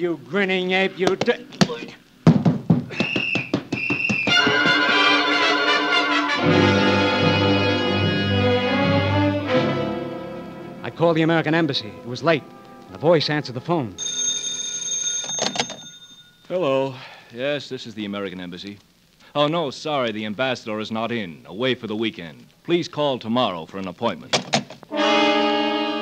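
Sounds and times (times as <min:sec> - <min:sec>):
fist fight blows and thuds: 0:02.3 - 0:04.3
police whistle blasts: 0:02.9 - 0:06.2
telephone bell ringing: 0:14.0 - 0:16.5.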